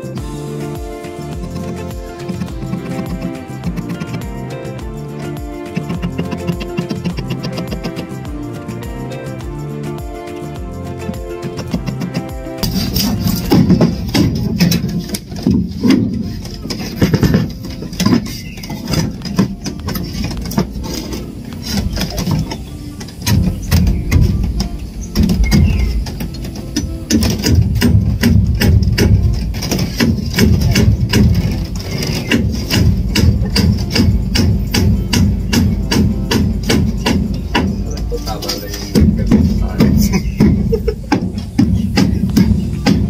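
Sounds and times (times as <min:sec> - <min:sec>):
background music with a beat: 0:00.0 - 0:43.0
hammer knocking on timber: 0:38.9 - 0:43.0.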